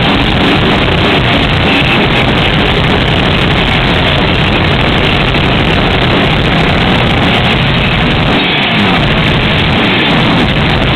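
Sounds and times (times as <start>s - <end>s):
metal band playing live: 0.0s - 10.9s.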